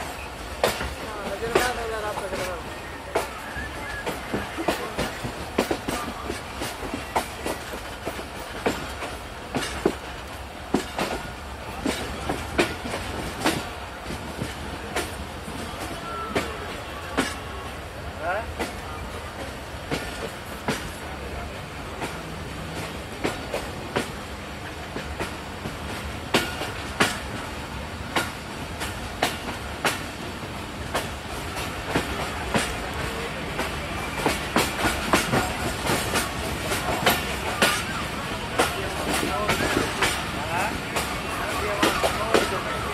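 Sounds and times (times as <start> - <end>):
train rumble: 0.0 - 42.9.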